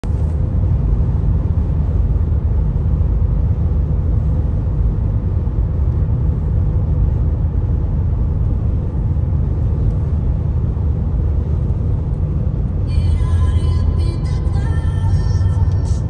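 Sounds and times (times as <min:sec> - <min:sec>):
road rumble inside car: 0:00.0 - 0:16.0.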